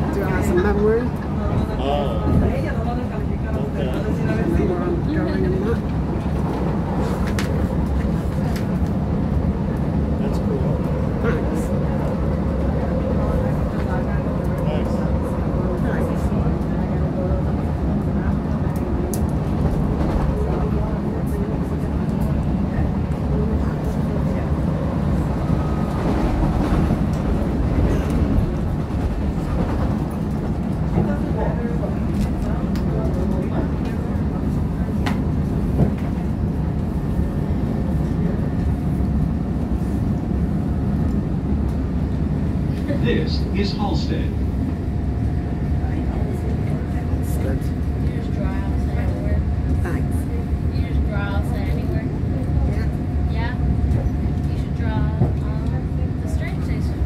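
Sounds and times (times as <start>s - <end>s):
train wheels and motors rumbling: 0.0s - 57.0s.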